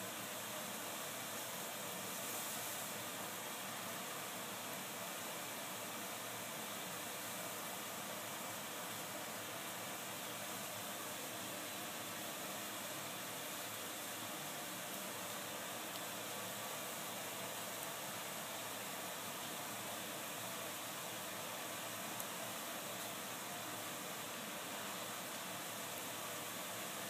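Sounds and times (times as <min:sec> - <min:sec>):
steady background hiss: 0:00.0 - 0:27.0.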